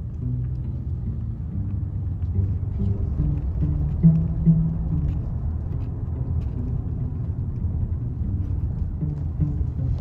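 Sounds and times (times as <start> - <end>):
car road rumble: 0.0 - 10.0.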